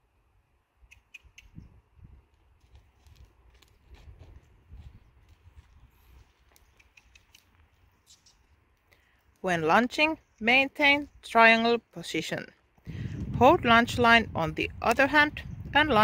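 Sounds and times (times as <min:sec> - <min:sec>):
horse hooves on sand: 0:02.2 - 0:09.8.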